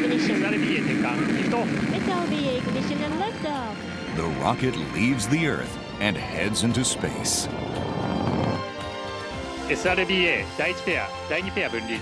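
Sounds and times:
rocket engines rushing: 0.0 - 5.2.

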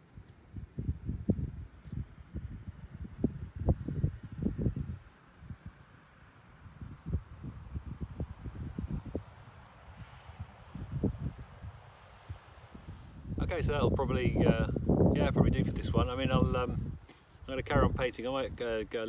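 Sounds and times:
wind buffeting microphone: 0.0 - 5.8, 6.6 - 19.0.

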